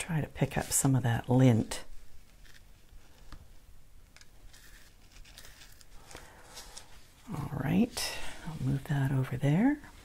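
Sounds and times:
tool scratching through powder: 0:04.4 - 0:05.9.

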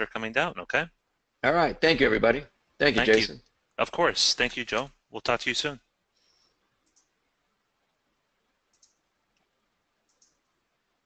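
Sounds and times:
faint line hiss: 0:00.0 - 0:06.6.

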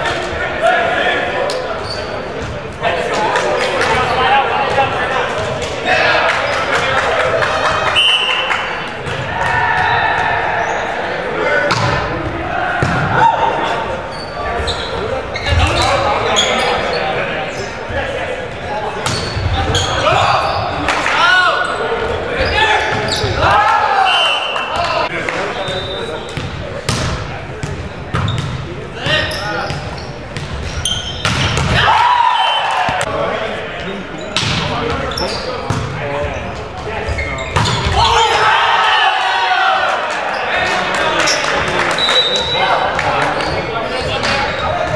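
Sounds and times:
players shouting: 0:02.8 - 0:26.2, 0:31.1 - 0:34.0, 0:37.1 - 0:44.9
sneakers squeaking on hardwood: 0:14.1 - 0:17.8, 0:19.0 - 0:20.8, 0:22.4 - 0:23.5, 0:25.6 - 0:31.8, 0:34.2 - 0:38.3.

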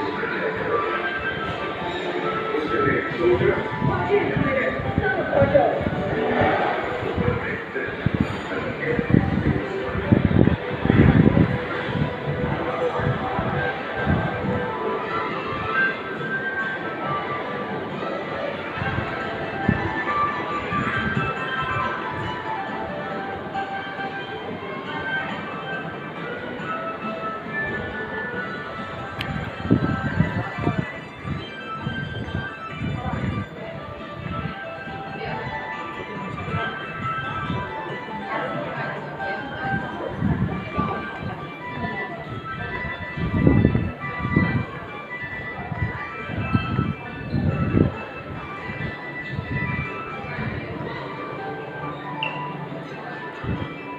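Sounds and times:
background music: 0:00.0 - 0:53.9
indistinct chatter: 0:00.0 - 0:53.9.

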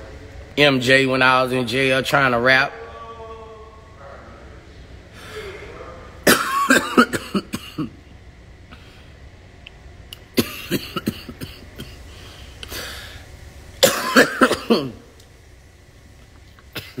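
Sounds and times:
man coughing: 0:06.2 - 0:08.0, 0:10.4 - 0:12.0, 0:13.8 - 0:15.0, 0:16.7 - 0:17.0.

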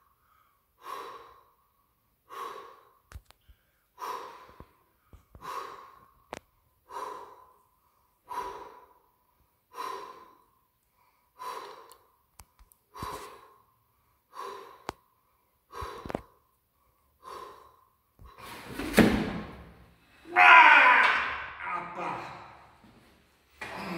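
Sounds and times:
man breathing hard: 0:00.0 - 0:12.3, 0:12.9 - 0:18.8
man shouting with effort: 0:20.2 - 0:22.6.

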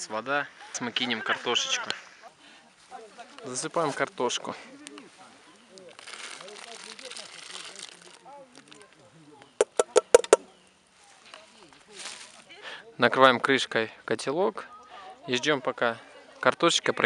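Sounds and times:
bowl knocking against pot: 0:09.6 - 0:10.4.

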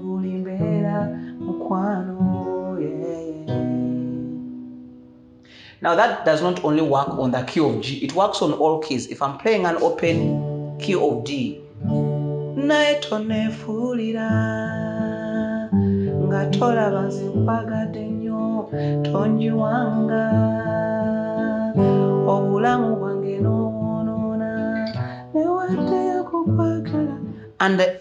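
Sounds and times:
acoustic guitar strumming chords: 0:00.0 - 0:05.8, 0:09.7 - 0:27.6.

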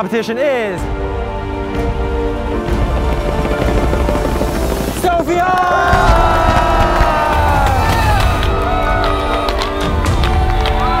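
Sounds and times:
suspense drumroll: 0:01.6 - 0:08.6.

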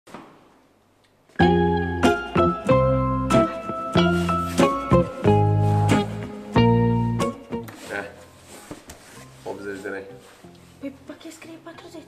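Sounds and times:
plucked-string instrumental music: 0:01.4 - 0:07.9.

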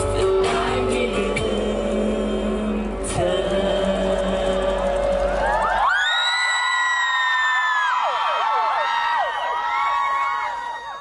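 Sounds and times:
man singing into a microphone: 0:00.0 - 0:05.7
instrumental backing track: 0:00.0 - 0:05.8.

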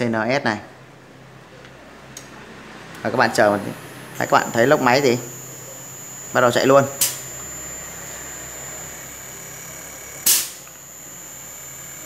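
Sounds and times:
compressor humming: 0:00.9 - 0:12.0
sharp click: 0:07.0 - 0:07.3, 0:10.2 - 0:10.8.

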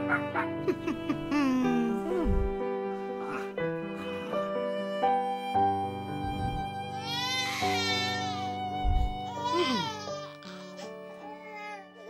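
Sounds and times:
music with held notes: 0:00.0 - 0:12.0
baby crying: 0:06.2 - 0:12.0
low thud: 0:08.9 - 0:09.2.

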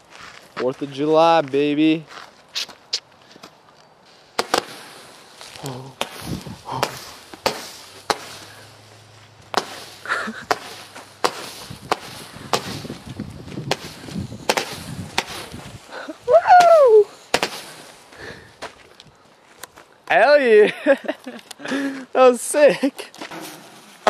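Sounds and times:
firework sharp pops: 0:04.3 - 0:08.8, 0:09.5 - 0:15.9, 0:16.6 - 0:18.0
person whooping: 0:15.9 - 0:17.2.

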